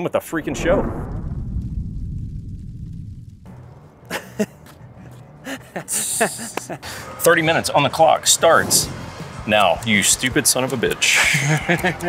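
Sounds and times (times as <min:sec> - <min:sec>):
deep cinematic boom: 0:00.2 - 0:04.0.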